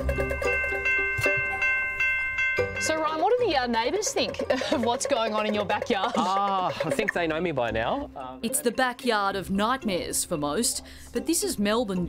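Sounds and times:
bell-like chime notes: 0.0s - 3.5s
light ticking beat: 0.0s - 12.0s.

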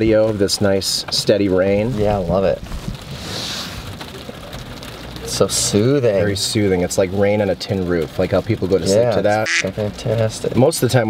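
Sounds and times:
rain on car roof: 0.0s - 11.0s.

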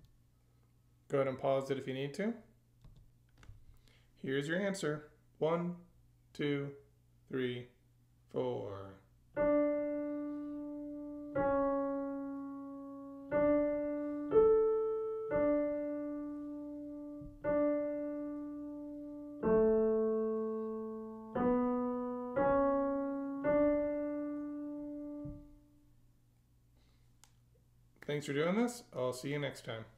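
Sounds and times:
slow solo piano melody: 9.4s - 25.7s.

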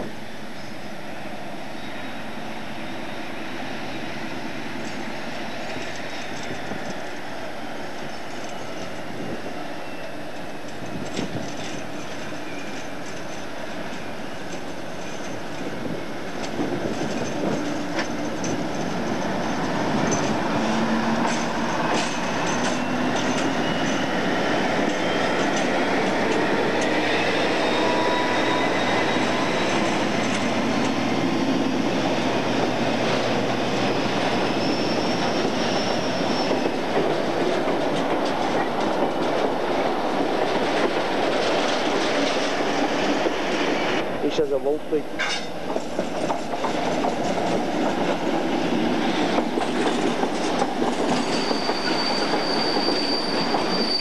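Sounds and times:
diesel locomotive passing: 0.0s - 54.0s
wheels clattering over rail joints: 10.7s - 27.0s, 45.1s - 54.0s
high wheel squeals: 16.8s - 31.9s, 33.4s - 37.4s, 49.7s - 54.0s.

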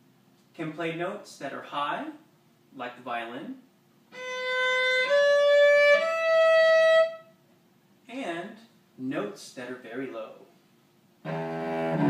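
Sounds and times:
cello bowed high notes: 11.2s - 12.0s.

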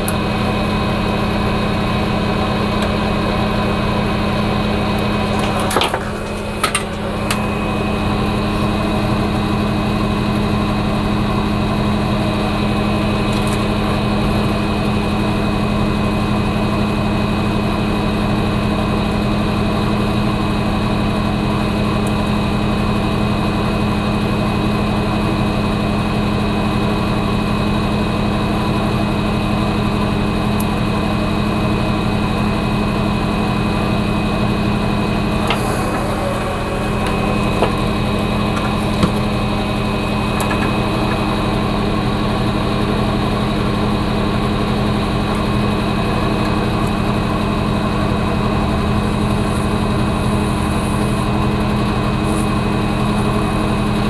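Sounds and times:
electric motor humming: 0.0s - 15.5s, 34.0s - 54.0s.

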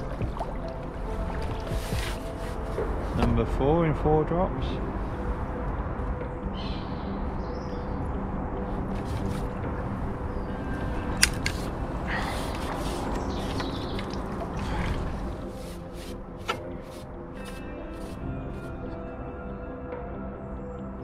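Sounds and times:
water splashing: 0.0s - 3.0s, 8.8s - 18.2s
wind rumble: 0.0s - 18.6s
soft background music: 0.0s - 21.0s.

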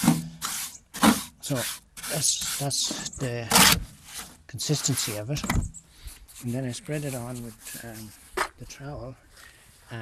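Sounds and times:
man speaking: 1.4s - 3.8s, 4.5s - 5.6s, 6.4s - 9.2s.

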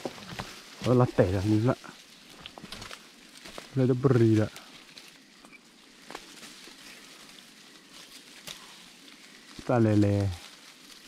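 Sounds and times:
brush rustling: 0.0s - 11.0s
twigs clicking: 0.0s - 11.0s.

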